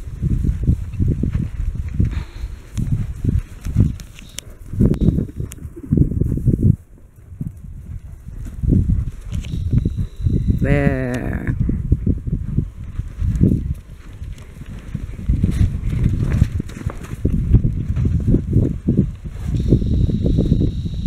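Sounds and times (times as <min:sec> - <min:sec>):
horse hooves thudding on ground: 0:00.0 - 0:10.6, 0:11.2 - 0:21.0.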